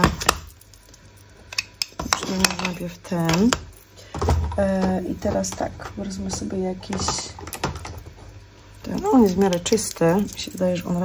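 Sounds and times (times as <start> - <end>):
plastic cases clacking: 1.6 - 8.2.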